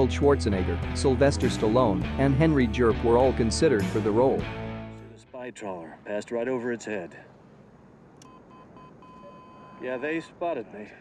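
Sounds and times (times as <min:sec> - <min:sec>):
low background hiss: 0:05.0 - 0:11.0
electronic cockpit beeps: 0:08.2 - 0:10.1.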